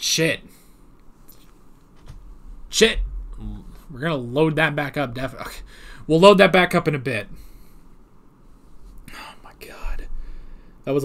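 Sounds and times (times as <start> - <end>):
man speaking: 2.7 - 7.4.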